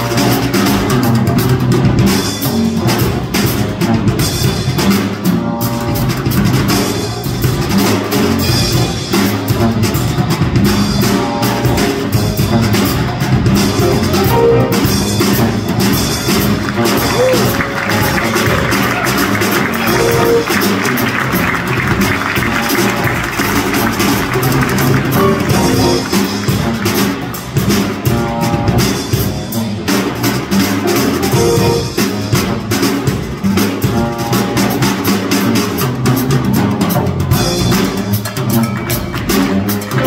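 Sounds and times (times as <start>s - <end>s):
drum kit with cymbals: 0.0s - 40.0s
electric bass guitar: 12.2s - 21.0s.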